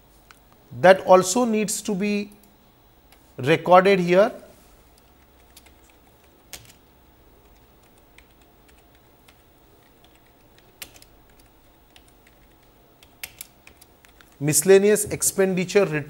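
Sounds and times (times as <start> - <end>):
computer keyboard typing: 4.9 - 14.4.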